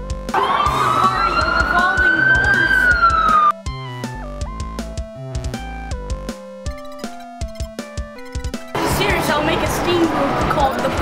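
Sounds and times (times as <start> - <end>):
high-pitched scream: 0.4 - 3.5.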